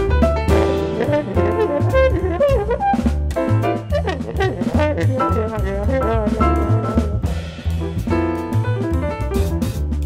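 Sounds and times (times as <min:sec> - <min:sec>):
double bass: 0:00.0 - 0:10.0
drum kit: 0:00.0 - 0:10.0
piano: 0:00.0 - 0:10.0
trombone solo: 0:00.5 - 0:07.4.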